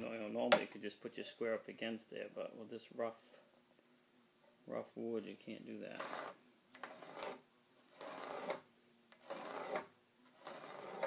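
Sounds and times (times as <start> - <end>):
pencil scratching on wood: 6.0 - 11.0.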